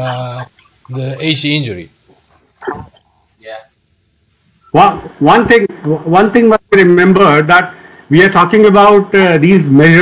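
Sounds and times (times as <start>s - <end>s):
person speaking on video call: 0.0s - 3.7s, 4.5s - 10.0s.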